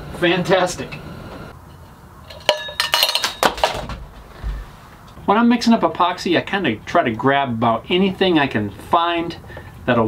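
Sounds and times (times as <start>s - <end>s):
hard containers clinking: 1.6s - 4.0s.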